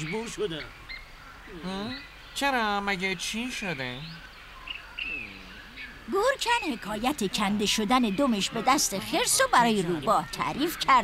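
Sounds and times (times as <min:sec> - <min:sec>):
faint birdsong chirps: 0:00.0 - 0:11.0.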